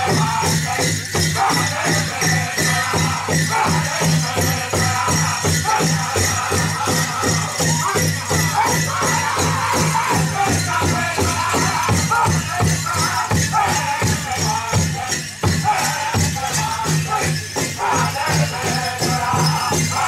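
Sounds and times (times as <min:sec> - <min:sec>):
jingling bells: 0:00.0 - 0:20.0
people singing: 0:00.0 - 0:20.0.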